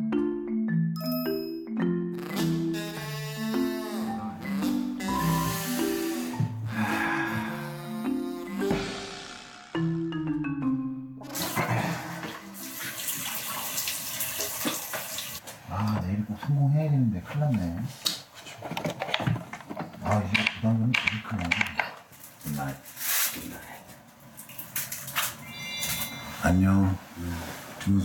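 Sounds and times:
bell-like twinkle chime: 0:01.0 - 0:01.8, 0:25.4 - 0:26.6
tap water running into basin: 0:11.3 - 0:15.4.

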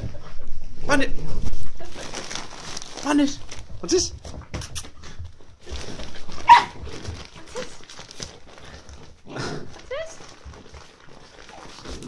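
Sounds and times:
dogs scuffling: 0:00.0 - 0:12.0
wrapping paper rustling: 0:01.4 - 0:04.4, 0:05.2 - 0:12.0.

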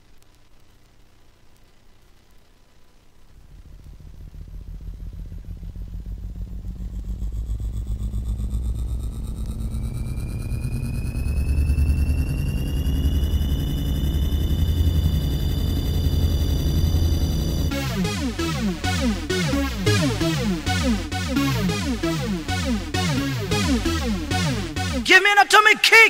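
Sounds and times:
fast-pulsing synth bass rumble: 0:03.4 - 0:25.0
high synth tone gliding upward: 0:03.4 - 0:25.0.

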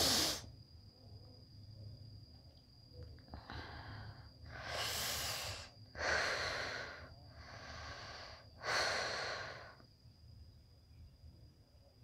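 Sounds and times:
person breathing heavily: 0:00.0 - 0:00.4, 0:03.4 - 0:09.8
faint high-pitched whine: 0:00.0 - 0:12.0.

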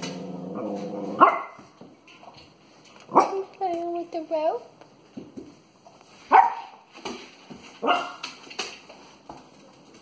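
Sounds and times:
small dog barking: 0:01.2 - 0:01.6, 0:03.1 - 0:03.5, 0:06.3 - 0:06.8, 0:07.8 - 0:08.2.

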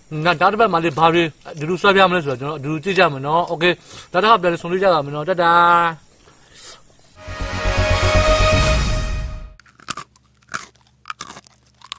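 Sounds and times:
music: 0:07.2 - 0:09.6
person chewing meat on bone: 0:09.6 - 0:11.9.

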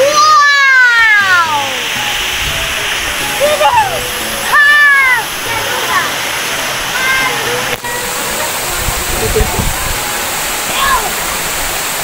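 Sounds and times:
waterfall rushing: 0:00.0 - 0:12.0.

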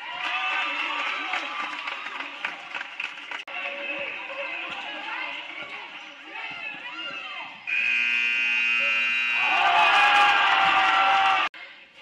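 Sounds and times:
crowd noise: 0:00.0 - 0:12.0
scoreboard buzzer long tone: 0:07.7 - 0:09.9.

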